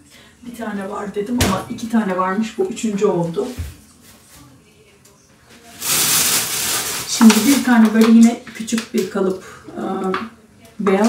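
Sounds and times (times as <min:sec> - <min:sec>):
plastic bag rustling: 0:05.5 - 0:08.3.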